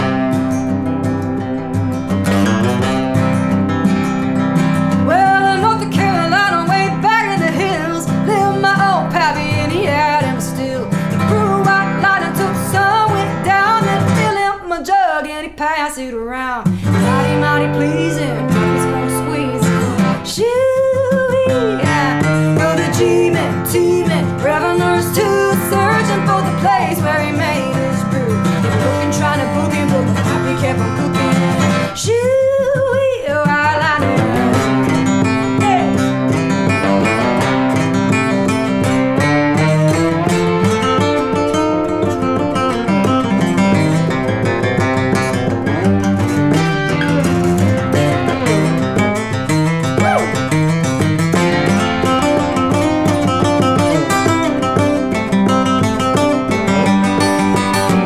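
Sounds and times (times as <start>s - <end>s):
lap steel guitar slide solo: 0.0s - 6.8s, 16.8s - 20.4s, 34.0s - 55.3s
acoustic guitar strumming: 0.0s - 58.0s.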